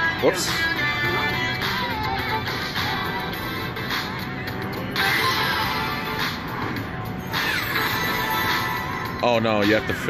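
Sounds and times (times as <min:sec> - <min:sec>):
slot machine bonus music: 0:04.8 - 0:10.0
electronic reel sound effects: 0:07.1 - 0:09.2.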